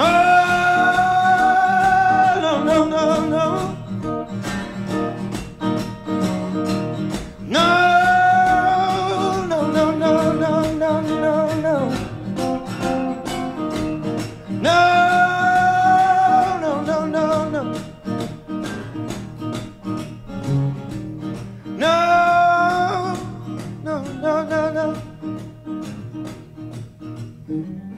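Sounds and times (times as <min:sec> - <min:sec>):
man singing with vibrato: 0:00.0 - 0:04.3, 0:07.4 - 0:12.4, 0:14.4 - 0:18.1, 0:21.7 - 0:25.5
guitar accompaniment: 0:00.0 - 0:27.9.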